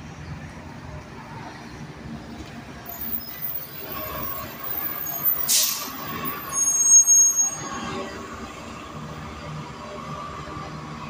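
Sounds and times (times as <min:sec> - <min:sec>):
bus engine running: 0:00.0 - 0:06.9, 0:07.5 - 0:11.0
air brake hiss: 0:05.3 - 0:06.0.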